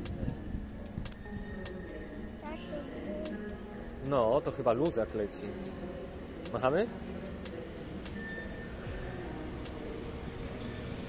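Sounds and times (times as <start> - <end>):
faint indistinct voices: 0.0 - 11.0.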